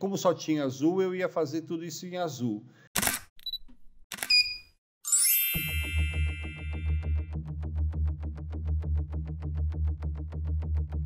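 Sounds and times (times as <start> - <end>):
shimmering chime: 5.1 - 7.2
bright ding: 5.1 - 7.3.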